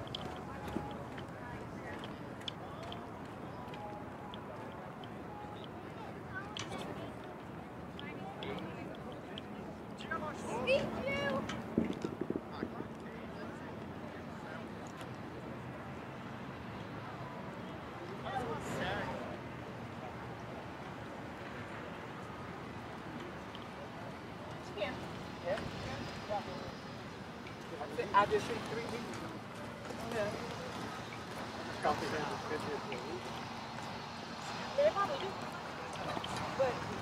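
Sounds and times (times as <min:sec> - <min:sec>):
crowd murmur: 0:00.0 - 0:37.0
passersby talking: 0:00.0 - 0:37.0.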